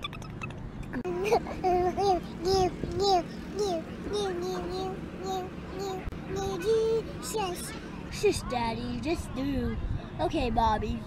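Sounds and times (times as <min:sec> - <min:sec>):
young child singing: 0:01.0 - 0:09.6.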